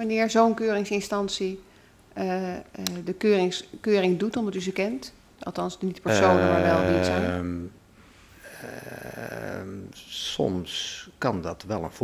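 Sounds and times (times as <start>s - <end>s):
man's drawn-out hesitation: 6.1s - 7.6s.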